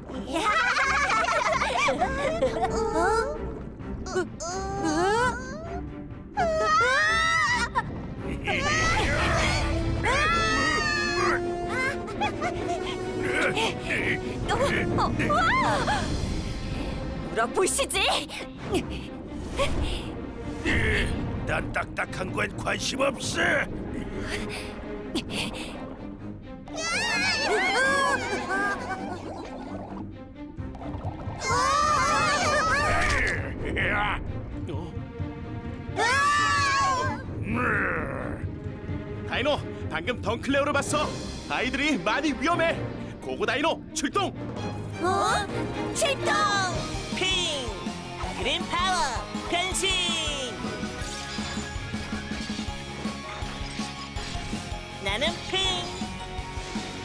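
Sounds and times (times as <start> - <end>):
background music: 0.0 - 57.0.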